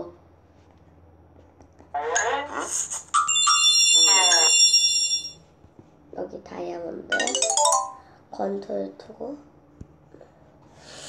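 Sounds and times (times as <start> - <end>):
sparkling bell-like chime: 7.2 - 8.0.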